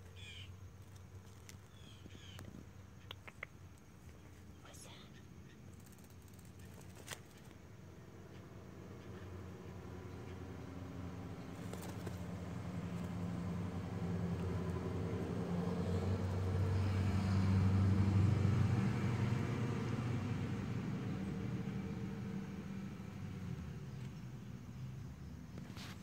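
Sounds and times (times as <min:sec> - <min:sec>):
motor vehicle passing: 0:08.1 - 0:26.0.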